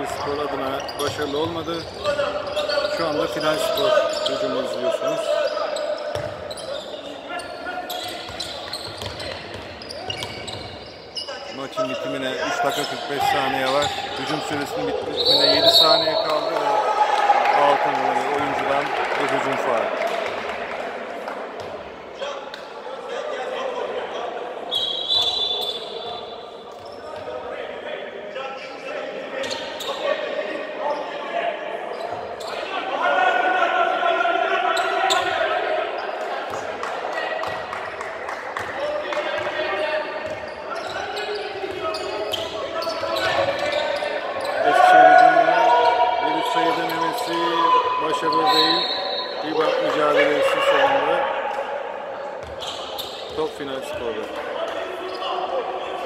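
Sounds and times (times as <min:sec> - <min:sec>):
players calling out: 0:00.0 - 0:20.2, 0:38.6 - 0:56.0.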